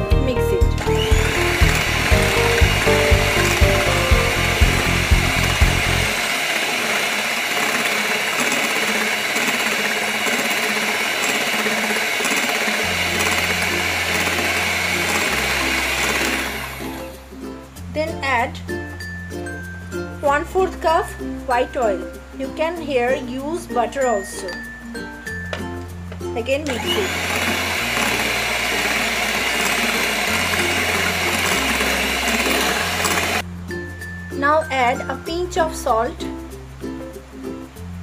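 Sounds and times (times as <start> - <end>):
electric hand mixer whining: 0.0 - 17.2, 26.6 - 33.4.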